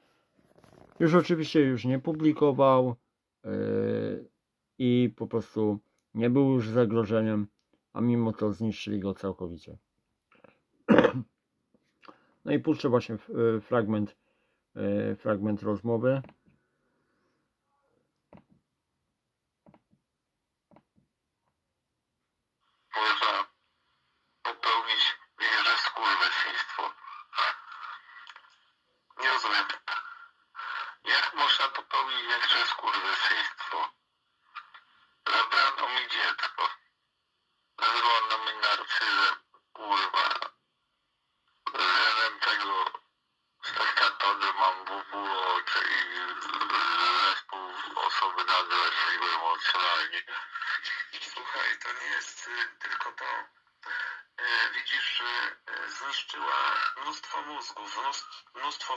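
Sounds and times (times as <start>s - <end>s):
recorded speech through computer speakers: 0.6s - 16.5s, 22.9s - 23.7s, 24.4s - 37.0s, 37.7s - 40.6s, 41.5s - 58.9s.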